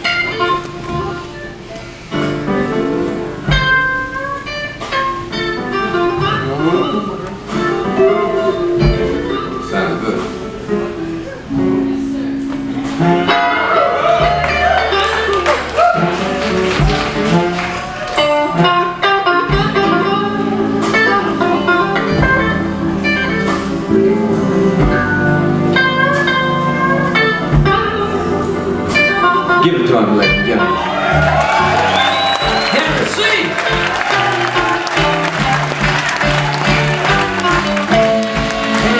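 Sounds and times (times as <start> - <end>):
electric blues band playing: 0.0 - 38.9
electric guitars: 0.0 - 38.9.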